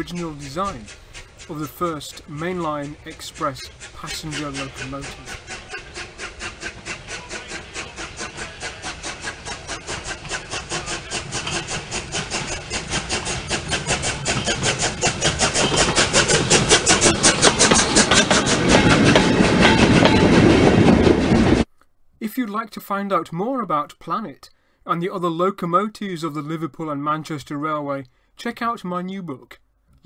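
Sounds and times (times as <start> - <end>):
steam locomotive exhaust beats: 0.0 - 21.7.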